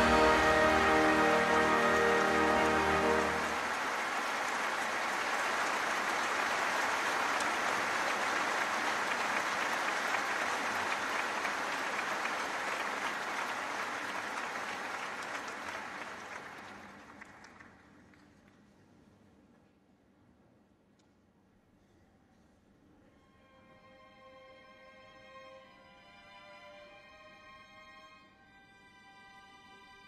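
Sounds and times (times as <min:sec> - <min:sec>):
orchestra holding a chord: 0:00.0 - 0:04.0
audience applause: 0:00.0 - 0:18.2.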